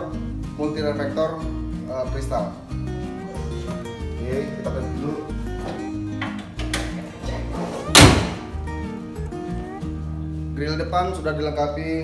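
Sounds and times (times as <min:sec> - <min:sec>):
background music: 0:00.0 - 0:12.0
car bonnet slamming shut: 0:07.8 - 0:08.6.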